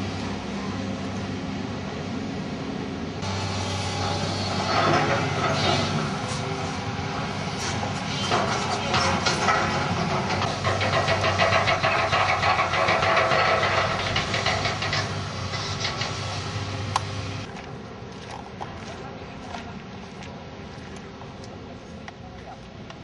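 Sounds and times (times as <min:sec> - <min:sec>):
diesel engine droning: 0:00.0 - 0:22.4.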